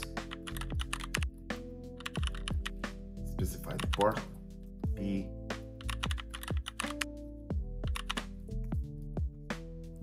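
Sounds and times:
computer keyboard keystrokes: 0.0s - 1.3s, 2.0s - 2.8s, 5.8s - 7.2s, 7.8s - 8.3s
background music with deep beat: 0.0s - 10.0s.

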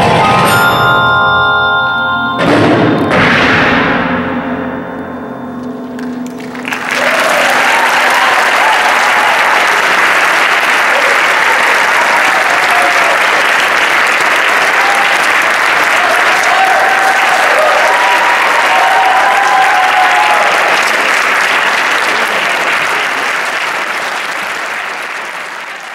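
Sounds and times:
percussion ensemble notes ringing: 0.0s - 19.8s
audience applause: 6.0s - 25.9s
audience cheering: 6.4s - 25.9s.

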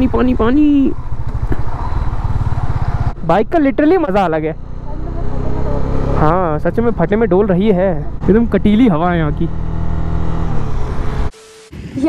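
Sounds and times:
motorcycle engine running: 0.0s - 11.3s.

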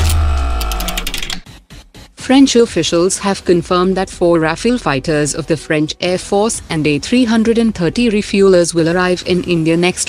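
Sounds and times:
held synth chord: 0.0s - 1.4s
rapid high ticking: 0.0s - 1.6s.

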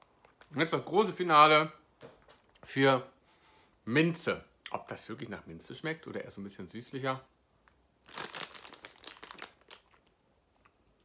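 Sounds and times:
crinkling rustle: 0.0s - 1.0s, 7.6s - 10.8s.

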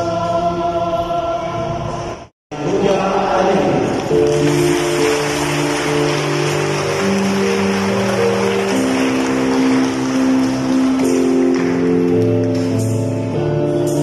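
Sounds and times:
electronic keyboard chords: 4.1s - 14.0s.

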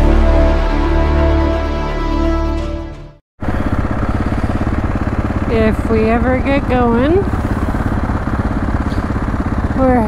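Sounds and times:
motorcycle engine running: 3.4s - 10.0s.

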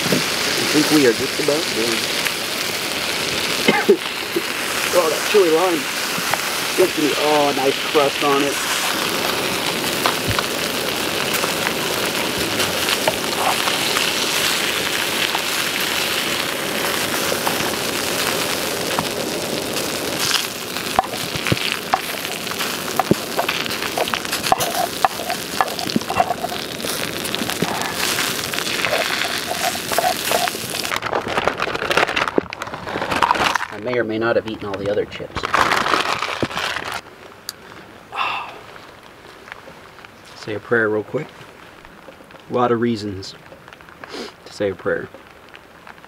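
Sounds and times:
fish sizzling in a frying pan: 0.0s - 33.8s, 38.1s - 46.0s
metal utensils scraping a pan: 21.9s - 26.9s, 27.7s - 30.9s.

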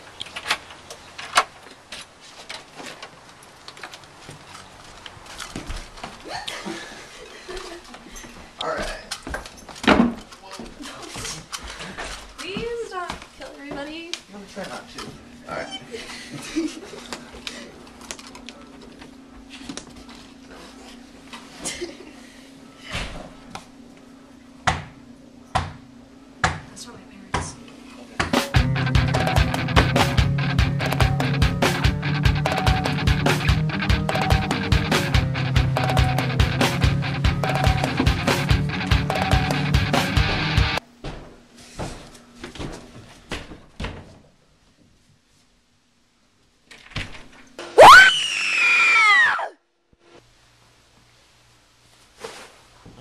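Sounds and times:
woman screaming: 47.8s - 49.6s.

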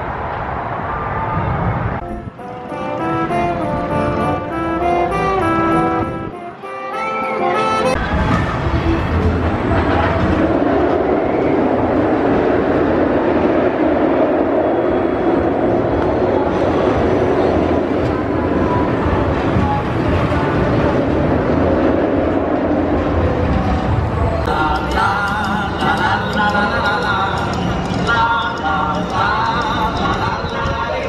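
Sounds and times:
roller coaster rumbling on track: 0.0s - 6.6s, 7.5s - 31.0s.

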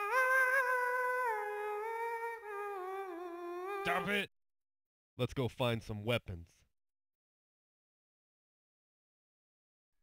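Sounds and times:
person humming: 0.0s - 4.1s.

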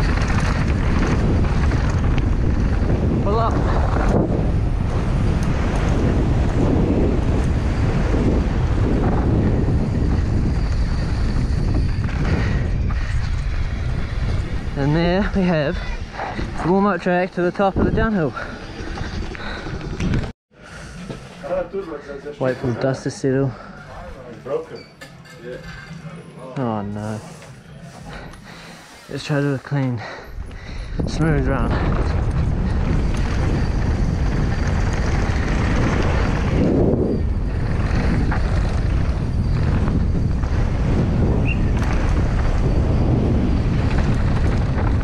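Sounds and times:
tyres rolling over stony dirt: 0.0s - 4.0s
wind on microphone: 0.0s - 20.3s, 27.0s - 45.0s
mountain bike rolling on dirt: 0.0s - 24.6s, 25.4s - 45.0s.

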